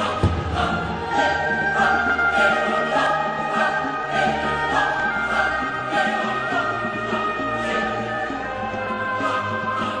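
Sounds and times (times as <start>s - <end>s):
choir singing held notes: 0.0s - 10.0s
light rhythmic pulse: 0.0s - 10.0s.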